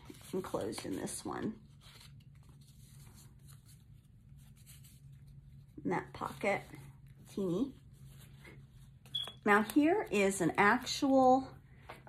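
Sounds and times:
paper rustling and scraping: 0:00.0 - 0:11.5
low steady hum: 0:00.0 - 0:12.0.

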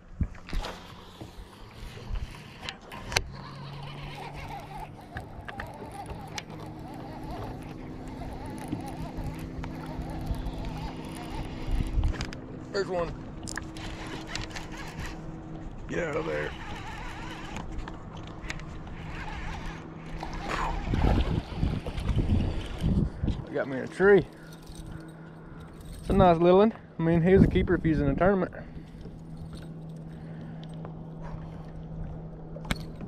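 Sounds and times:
trolling motor humming: 0:00.0 - 0:33.0
fishing reel clicks: 0:02.2 - 0:12.4, 0:16.2 - 0:17.7.

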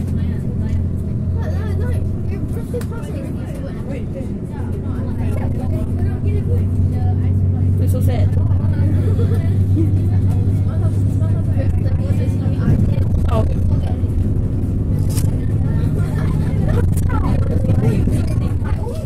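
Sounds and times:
bus diesel engine droning: 0:00.0 - 0:19.0.

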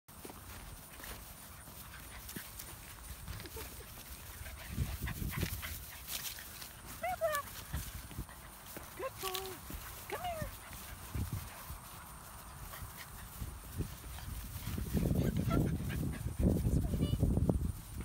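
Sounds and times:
puppies tussling on dry grass: 0:00.1 - 0:18.0.

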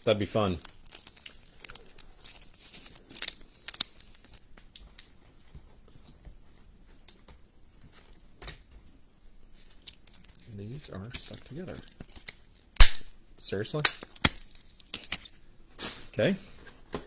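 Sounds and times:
sharp plastic crackles: 0:00.0 - 0:05.1, 0:09.6 - 0:13.2, 0:13.8 - 0:16.0
plastic sleeve crinkling: 0:00.0 - 0:05.2, 0:09.5 - 0:12.8, 0:13.9 - 0:16.0.

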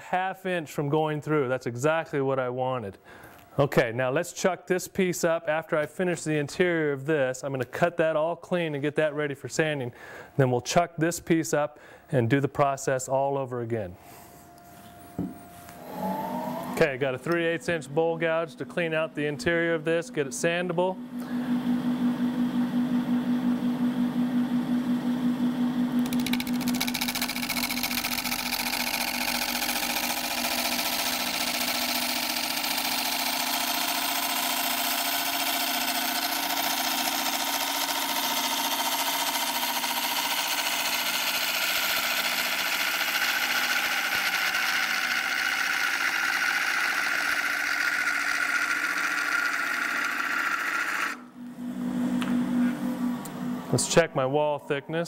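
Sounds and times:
wood lathe humming: 0:15.7 - 0:17.4, 0:26.0 - 0:51.4.

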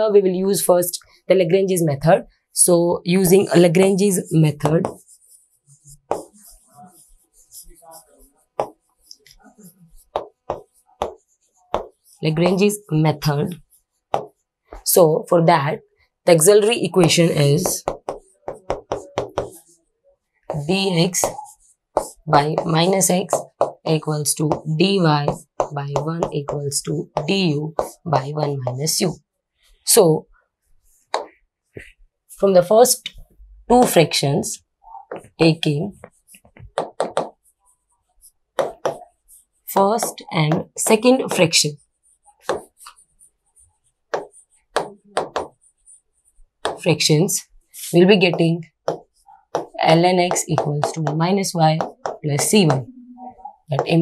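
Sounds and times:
chalk tapping on chalkboard: 0:04.5 - 0:14.9, 0:16.6 - 0:19.8, 0:20.5 - 0:29.1, 0:30.8 - 0:32.0, 0:35.0 - 0:52.9, 0:53.7 - 0:54.0.

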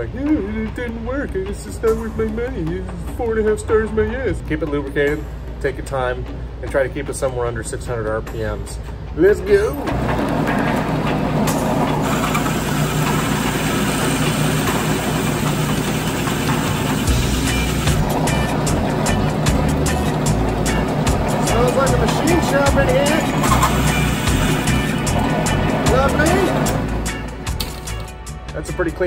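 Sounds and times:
drill press motor running: 0:09.7 - 0:28.0.

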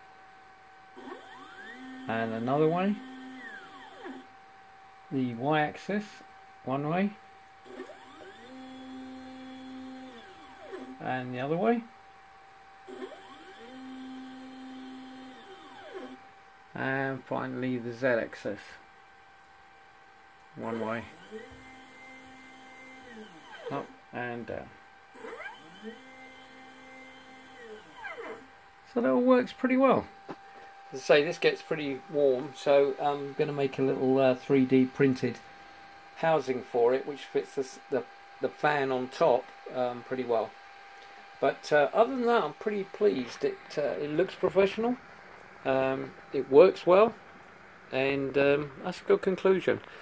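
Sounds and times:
faint steady hum: 0:00.0 - 0:50.0
stepper motor whine: 0:00.9 - 0:04.4, 0:07.6 - 0:11.3, 0:12.8 - 0:16.4, 0:20.6 - 0:45.0.

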